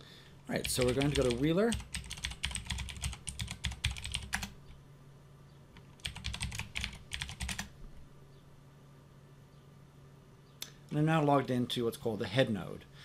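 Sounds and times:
typing on computer keyboard: 0.6s - 4.6s, 6.0s - 7.7s.

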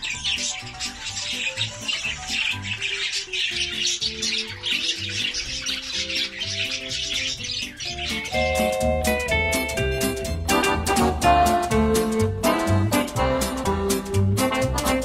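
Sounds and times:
budgerigars chattering: 0.0s - 11.2s
music with bass beat: 8.0s - 15.0s.

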